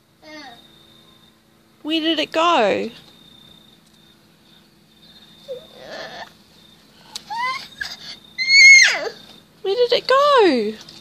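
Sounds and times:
toddler babbling and squealing: 5.5s - 6.3s, 7.3s - 9.2s.

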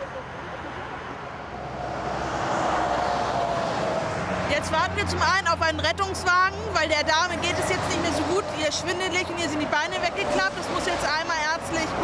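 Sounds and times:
vehicle passing at speed: 0.7s - 8.9s.

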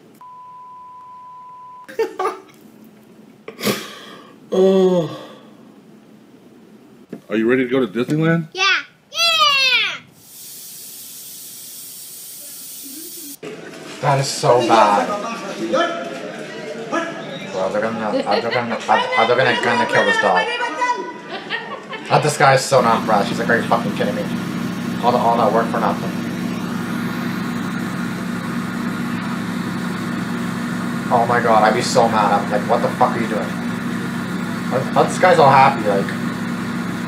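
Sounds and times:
steady hiss: 10.1s - 13.4s
road roller engine humming: 22.7s - 37.0s.

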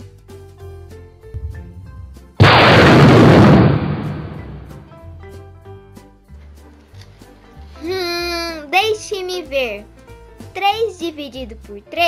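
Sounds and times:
light background music: 0.0s - 2.4s, 4.7s - 12.0s
thunderclap: 2.4s - 4.9s.

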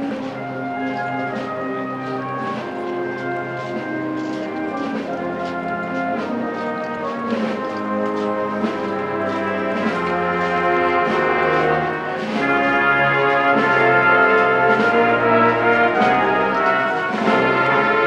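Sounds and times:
brass band playing march: 0.0s - 18.0s.

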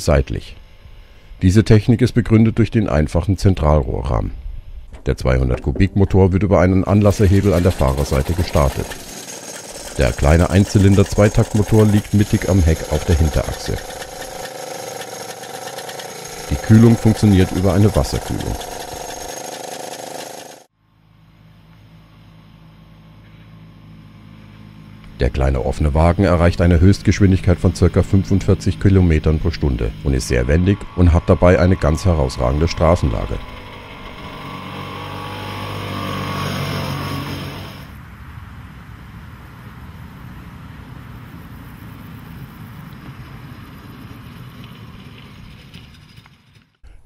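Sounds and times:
two-stroke engine running: 6.9s - 20.7s, 22.6s - 38.0s.

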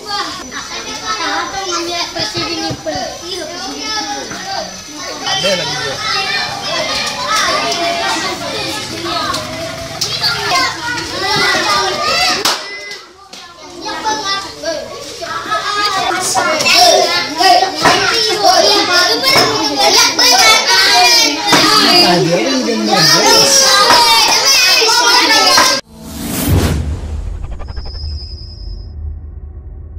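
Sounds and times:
children talking and calling out: 0.0s - 25.8s.

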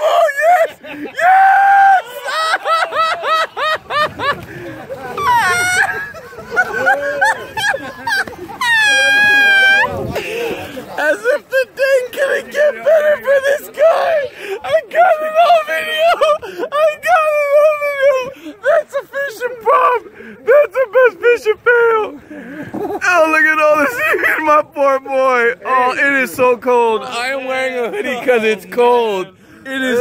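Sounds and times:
person whooping: 0.0s - 3.7s, 5.1s - 6.1s, 8.1s - 10.1s
person laughing hard: 0.0s - 10.7s.

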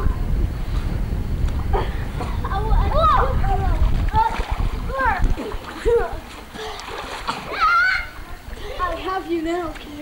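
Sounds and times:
children splashing in pool: 2.8s - 10.0s
high-pitched voices calling out: 7.4s - 9.4s.

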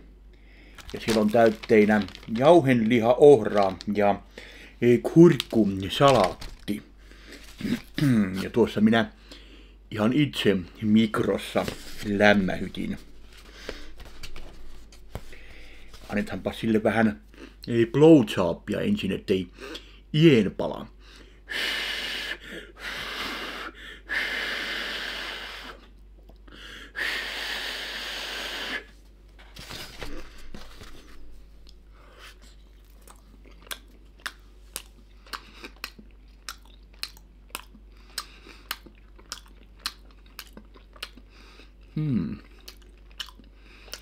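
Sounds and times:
man chewing with mouth clicks: 25.8s - 26.6s, 31.6s - 44.0s.

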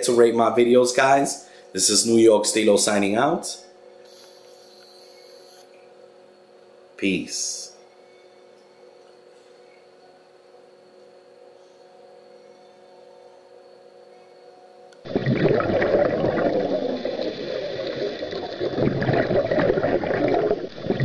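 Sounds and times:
faint aquarium equipment hum: 0.0s - 21.0s
underwater bubbling and gurgling: 15.0s - 21.0s.

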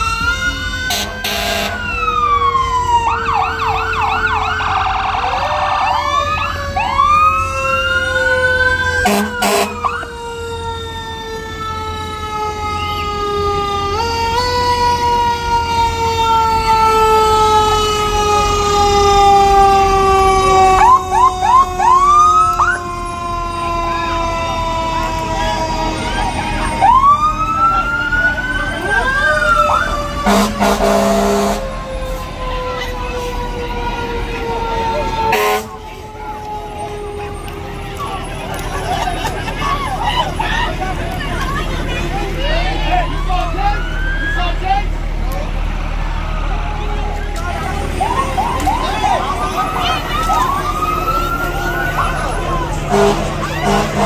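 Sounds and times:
fire truck siren wailing: 0.0s - 54.0s
rapid rising siren whoops: 0.0s - 54.0s
short loud horn blasts: 30.2s - 31.6s, 52.9s - 54.0s.

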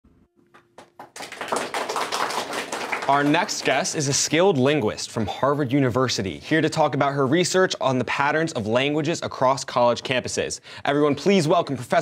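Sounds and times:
people clapping: 0.5s - 4.4s.

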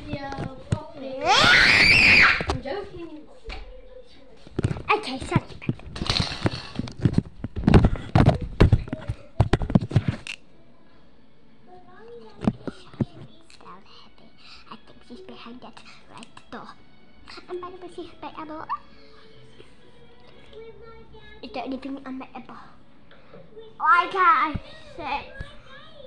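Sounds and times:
child screaming: 1.2s - 2.5s.

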